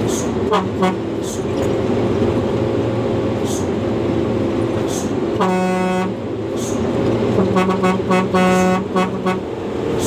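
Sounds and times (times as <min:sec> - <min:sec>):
truck diesel engine running: 0:00.0 - 0:10.0
truck horn blast: 0:00.4 - 0:01.2, 0:05.3 - 0:06.2, 0:07.3 - 0:09.6.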